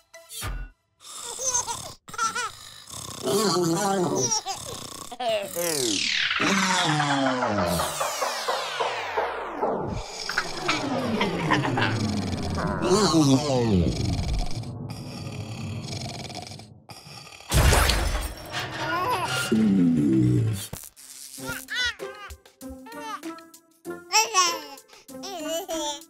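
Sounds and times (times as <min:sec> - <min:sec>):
cartoon music with sweeping tones: 0:05.6 - 0:15.8, 0:18.6 - 0:26.0
loud crash: 0:17.5 - 0:19.8.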